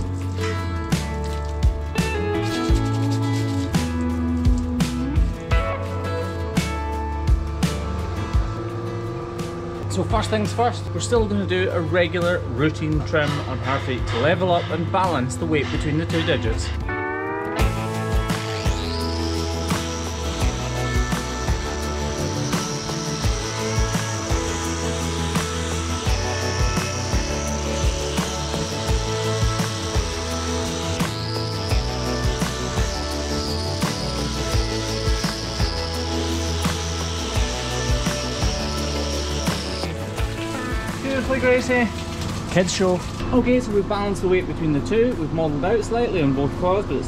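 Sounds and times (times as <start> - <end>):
angle grinder whining: 0.0 - 6.7, 15.6 - 43.3
background music with steady beat: 0.0 - 47.0.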